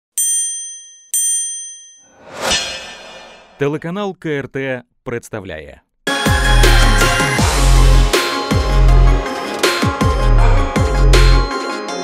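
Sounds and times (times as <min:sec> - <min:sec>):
bright bell-like dings: 0:00.2 - 0:02.1.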